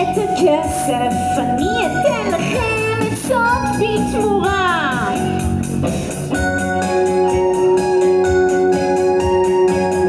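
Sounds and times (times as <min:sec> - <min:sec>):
woman singing: 0:00.0 - 0:05.3
electric bass: 0:00.0 - 0:10.0
keyboard: 0:00.0 - 0:10.0.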